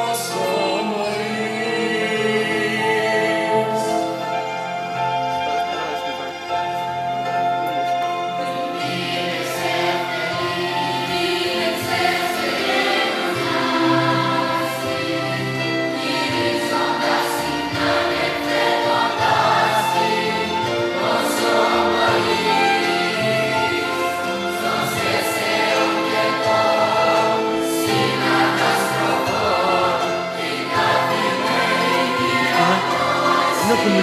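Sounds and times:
youth choir singing: 0.0s - 4.4s, 8.6s - 34.0s.

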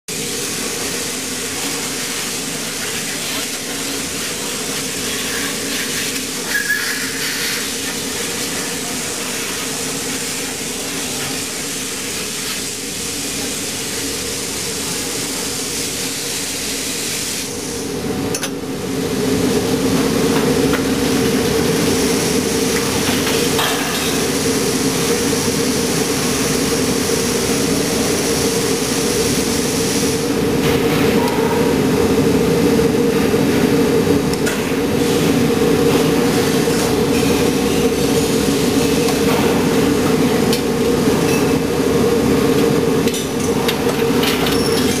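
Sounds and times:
die-casting machine hum and hiss: 0.1s - 45.0s.

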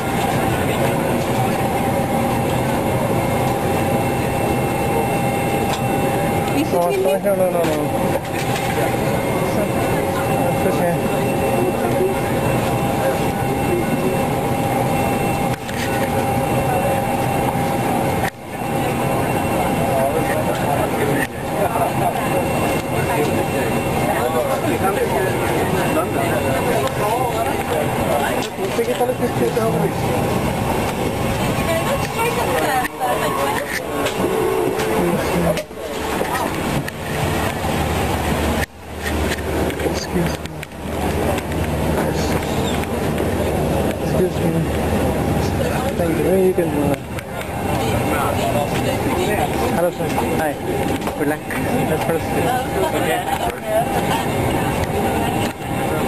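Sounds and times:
airliner cabin drone: 0.0s - 56.0s
indistinct chatter: 0.0s - 56.0s
murmur of voices: 0.0s - 56.0s.

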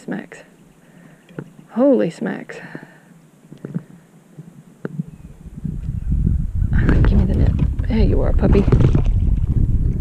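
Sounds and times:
microphone handling rumble: 3.5s - 10.0s.

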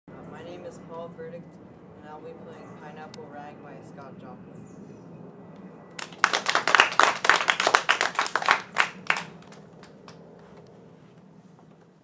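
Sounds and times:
people clapping: 6.0s - 10.2s.

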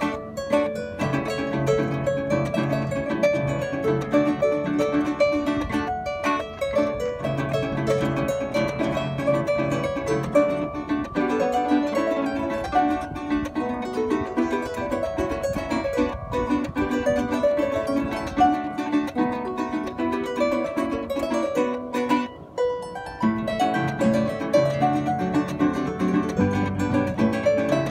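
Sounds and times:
harp playing fast melody: 0.0s - 27.9s
strummed cuatro: 0.0s - 27.9s.

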